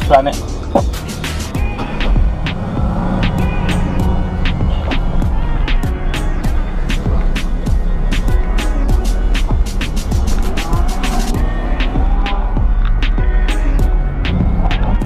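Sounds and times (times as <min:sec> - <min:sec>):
hip-hop instrumental beat: 0:00.0 - 0:15.0.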